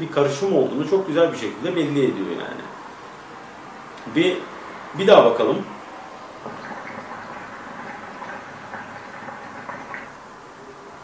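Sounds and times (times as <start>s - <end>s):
hookah bubbling: 0.6s - 11.0s.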